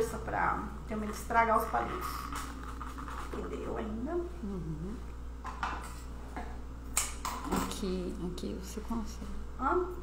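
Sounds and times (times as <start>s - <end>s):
woman speaking: 0.0s - 2.4s, 3.2s - 5.2s, 7.5s - 10.0s
steady low hum: 0.0s - 10.0s.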